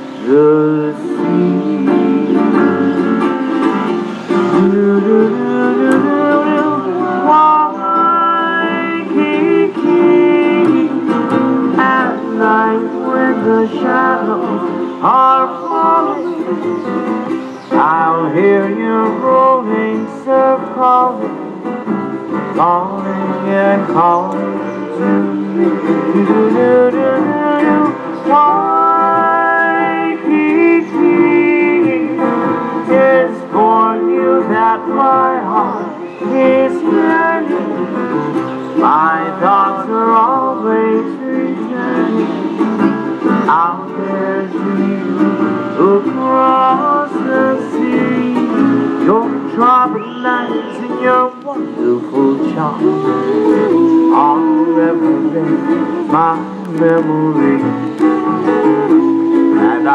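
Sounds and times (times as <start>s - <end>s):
band playing slow ballad: 0.0s - 59.9s
person singing: 0.0s - 59.9s.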